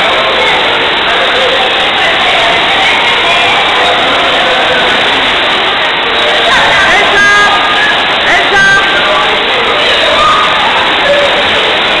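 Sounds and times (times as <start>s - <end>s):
churning water: 0.0s - 12.0s
crowd of voices: 0.0s - 12.0s.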